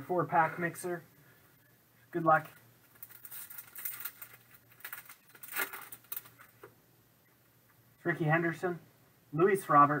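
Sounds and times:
plastic wrapper tearing and crinkling: 2.8 - 6.7.

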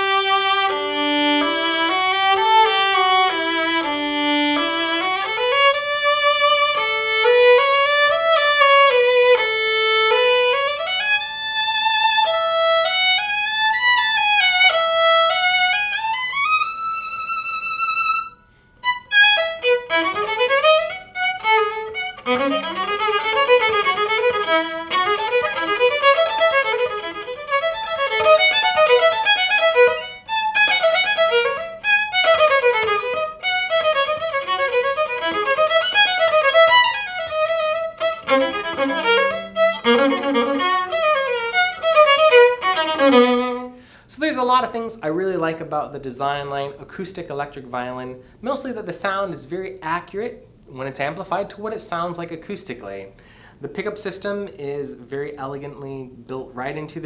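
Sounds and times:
amplified violin melody: 0.0 - 43.9.

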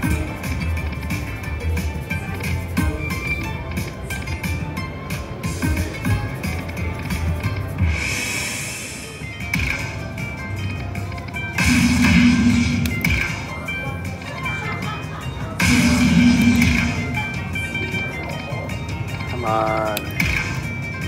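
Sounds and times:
slot machine music and effects: 0.0 - 21.0
noisy swells: 7.8 - 9.3, 11.6 - 13.5, 15.6 - 17.4.

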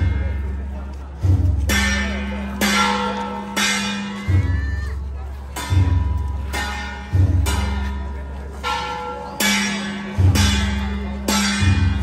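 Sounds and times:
gongs and drums struck: 0.0 - 12.0.

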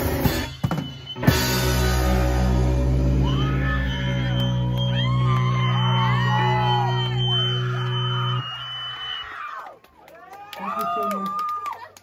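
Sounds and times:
crowd whooping and yelling: 1.7 - 12.0.

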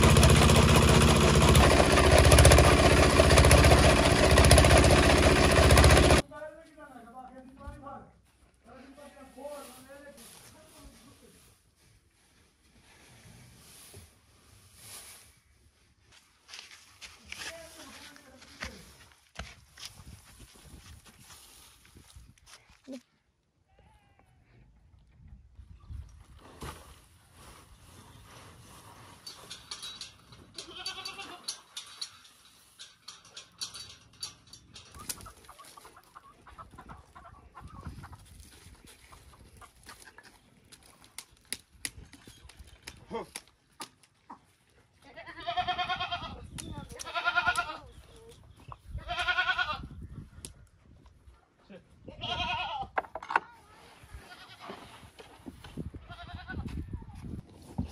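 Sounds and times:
knocks and shuffling: 26.6 - 44.7.

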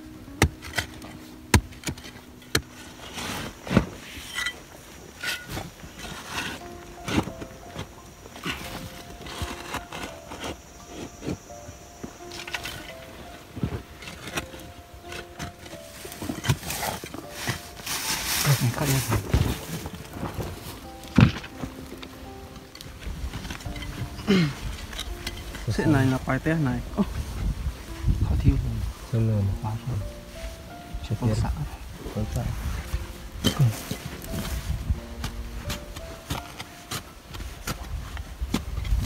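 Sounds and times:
background music with held notes: 0.0 - 39.0
digging tool chopping into clay: 0.4 - 3.9, 33.4 - 34.5.

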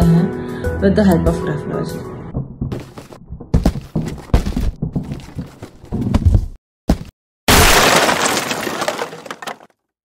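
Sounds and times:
crate crash with pieces clinking: 7.5 - 9.8.

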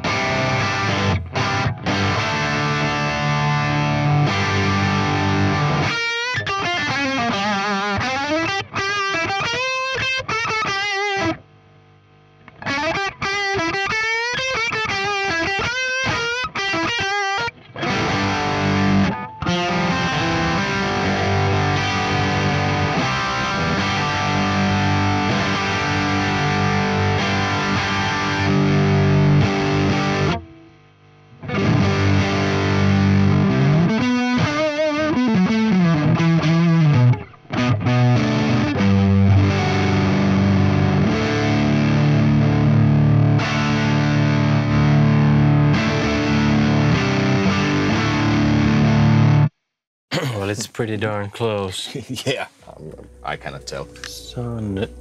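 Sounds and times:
distorted electric guitar: 0.0 - 49.5, 52.2 - 55.0.

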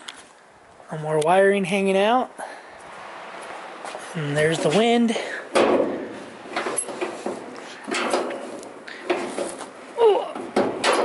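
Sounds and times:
metal hood knocks and rattles: 5.5 - 9.6, 10.4 - 11.0.

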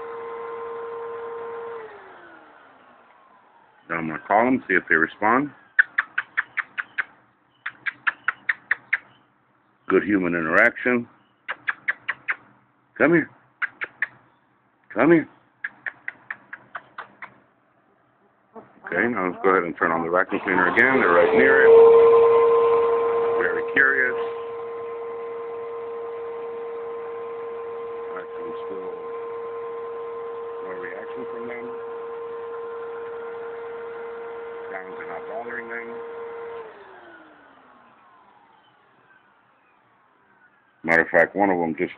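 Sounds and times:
vacuum cleaner running: 0.0 - 4.6, 18.9 - 39.2
person making kissing sounds: 5.8 - 9.1, 11.5 - 12.5, 13.6 - 14.2, 15.6 - 17.4.

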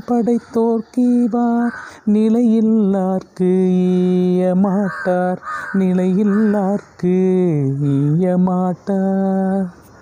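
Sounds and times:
man chanting: 0.0 - 9.8.

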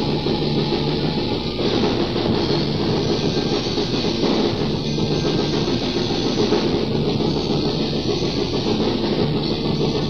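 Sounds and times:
distorted electric guitar: 0.0 - 10.0
drums: 0.0 - 10.0.

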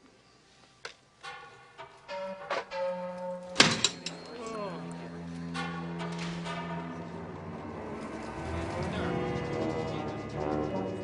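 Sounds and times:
held background music notes: 0.1 - 11.0.

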